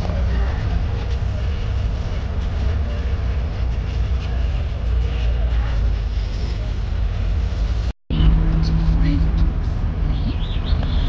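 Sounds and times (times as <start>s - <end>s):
vehicle engine and road rumble: 0.0s - 11.0s.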